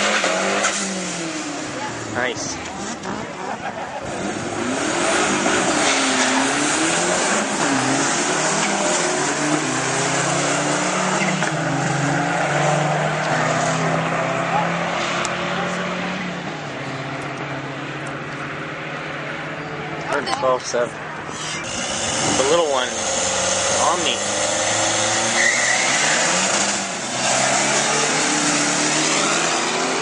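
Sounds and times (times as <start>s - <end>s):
cars accelerating hard: 0.0s - 30.0s.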